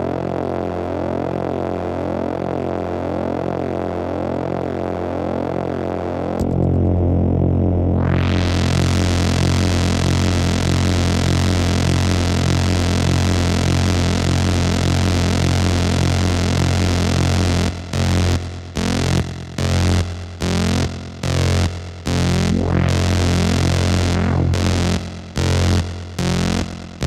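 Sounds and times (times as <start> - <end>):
synthesizer buzzing drone: 0.0 - 27.0.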